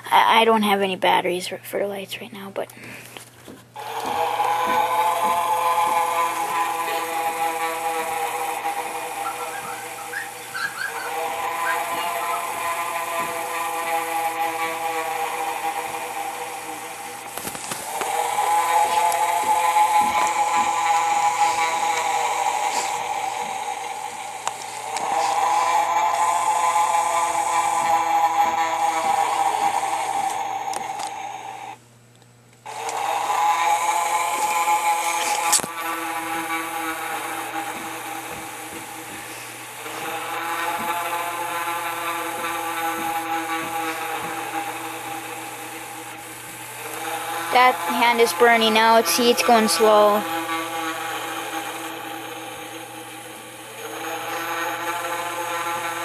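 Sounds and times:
electric motor whirring hum: 3.5s - 56.0s.

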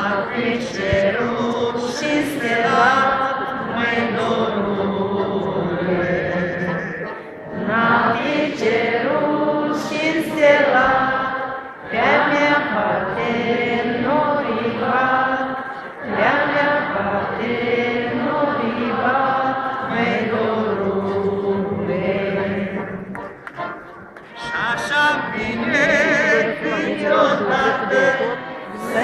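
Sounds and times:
crowd singing folk song: 0.0s - 29.0s.

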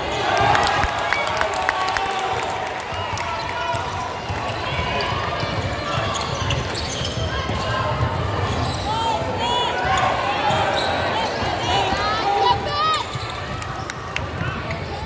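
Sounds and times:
voices in a hall: 0.0s - 15.0s
sneakers squeaking: 3.2s - 15.0s.

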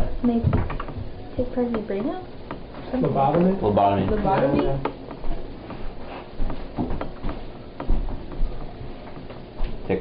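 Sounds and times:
irregular clicks and knocks: 0.0s - 9.8s.

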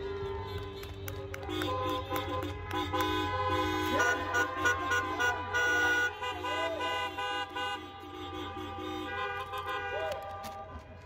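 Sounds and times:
car horns honking: 0.0s - 11.0s.

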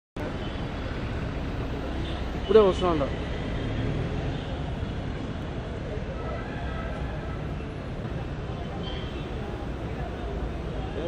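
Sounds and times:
passing traffic hum: 0.2s - 11.0s.

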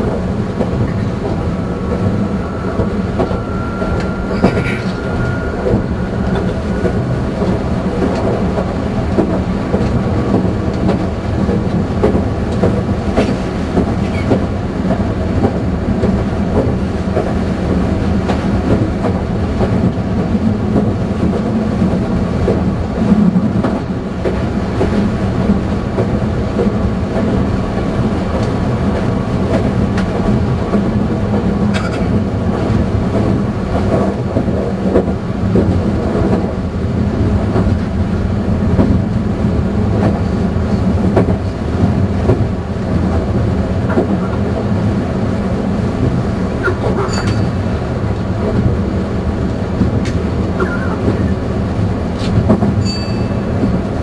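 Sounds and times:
clickety-clack over rail joints: 0.0s - 54.0s
train wheels rumbling on rail: 0.0s - 54.0s.

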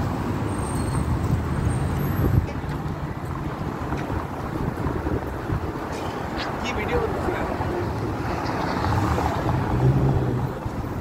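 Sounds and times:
cars passing close by: 0.0s - 11.0s.

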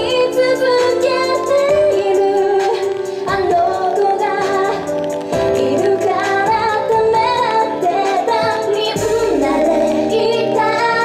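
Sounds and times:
pop dance song over pa: 0.0s - 11.0s
women's group vocals: 5.6s - 11.0s.

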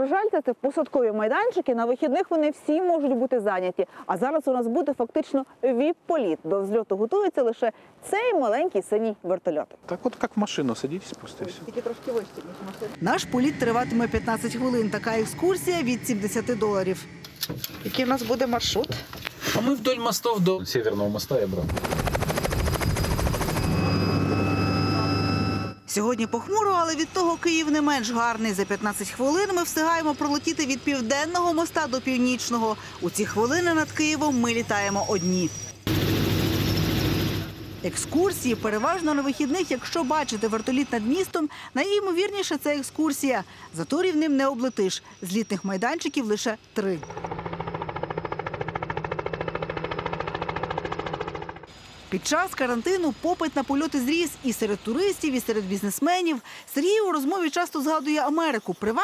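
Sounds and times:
engine hum: 12.3s - 19.4s, 47.0s - 52.1s
helicopter rotor blades beating: 13.0s - 18.6s, 21.5s - 41.4s, 47.0s - 51.7s
helicopter rotor chopping: 13.0s - 19.1s, 21.2s - 24.4s, 47.0s - 51.7s
turbine whine: 13.0s - 19.3s, 21.5s - 41.4s.

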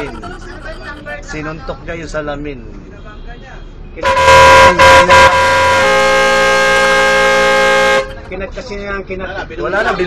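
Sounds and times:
loud horn blasts: 4.0s - 8.2s.

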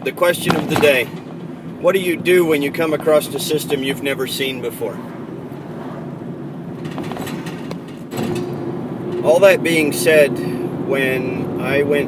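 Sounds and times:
vehicle engine idling hum: 0.0s - 12.0s.

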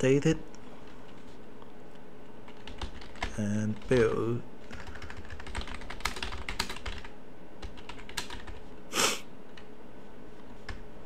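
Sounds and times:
typing on keyboard: 2.5s - 8.6s.

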